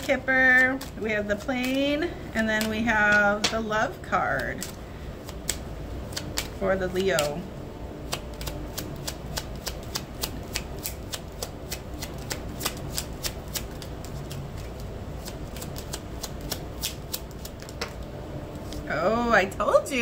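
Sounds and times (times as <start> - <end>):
cards being shuffled: 0.0 - 3.6, 4.3 - 7.4, 8.1 - 18.9.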